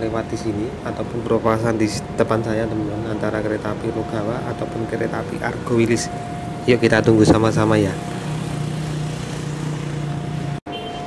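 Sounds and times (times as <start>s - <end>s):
engine idling hum: 3.9s - 10.3s.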